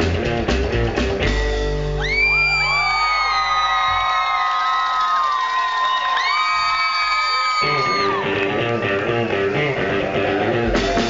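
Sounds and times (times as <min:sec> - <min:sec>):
rockabilly band playing: 0:00.0 - 0:03.7, 0:07.6 - 0:11.0
long whooping calls: 0:02.0 - 0:09.5.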